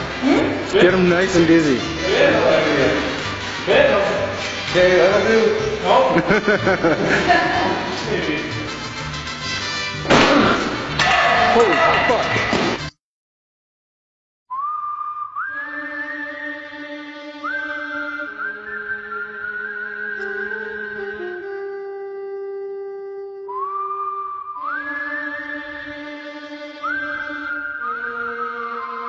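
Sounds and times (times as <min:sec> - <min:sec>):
sliding high lead melody: 0:00.0 - 0:12.5.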